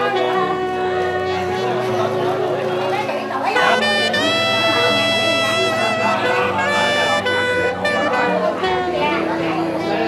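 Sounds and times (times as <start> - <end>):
low accompaniment: 0.0 - 10.0
reed wind instrument melody: 0.0 - 10.0.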